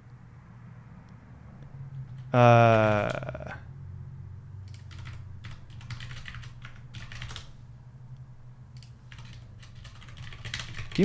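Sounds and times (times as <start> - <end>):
typing on computer keyboard: 1.9 - 3.4, 4.7 - 7.6, 8.8 - 11.0.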